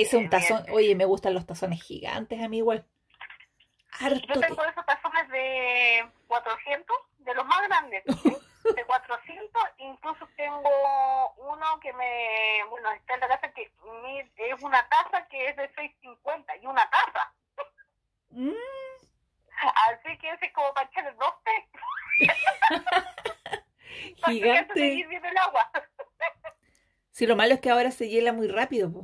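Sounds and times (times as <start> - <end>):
women talking over a phone: 0.0 - 2.9, 3.8 - 17.4, 18.9 - 23.3, 24.0 - 26.5, 27.1 - 29.0.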